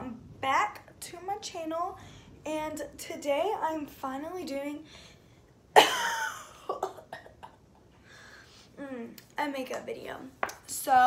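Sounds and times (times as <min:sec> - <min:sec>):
girl coughing: 0:05.8 - 0:07.6.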